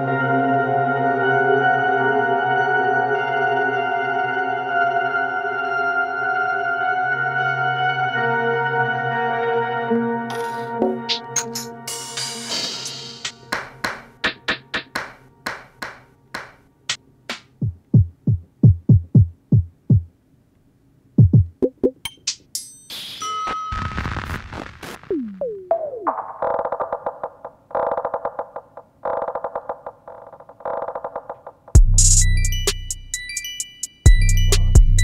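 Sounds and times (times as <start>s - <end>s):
synthesizer percussion hits: 10.3s - 20.1s, 31.7s - 33.1s, 34.1s - 35.0s
synthesizer rapid pulsing notes: 25.0s - 28.6s.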